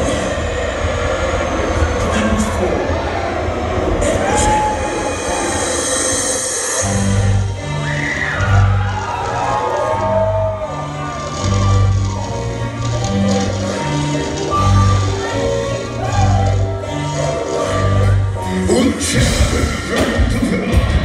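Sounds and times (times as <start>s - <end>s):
crowd noise: 0.0s - 21.0s.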